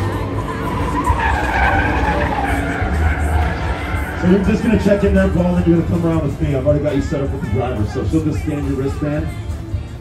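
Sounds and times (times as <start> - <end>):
car engine running low: 0.0 - 8.7
tires squealing: 0.0 - 8.8.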